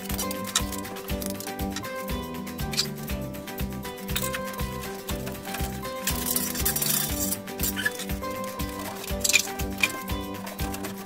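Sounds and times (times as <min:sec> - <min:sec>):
rubble clattering into metal tub: 0:00.0 - 0:01.9, 0:04.1 - 0:11.0
music with steady beat: 0:00.0 - 0:11.0.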